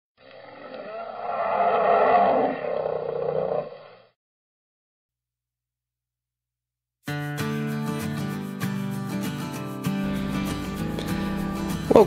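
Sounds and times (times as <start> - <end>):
large animal roar: 0.2 - 3.9.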